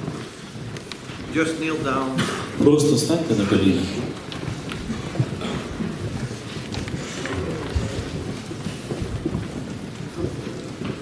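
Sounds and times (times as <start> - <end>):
rumbling and small knocks: 0.0 - 11.0
murmur of praying voices: 1.4 - 9.4.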